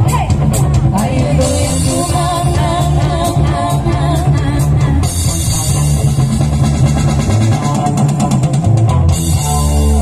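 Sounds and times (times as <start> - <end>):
street band playing: 0.0 - 10.0.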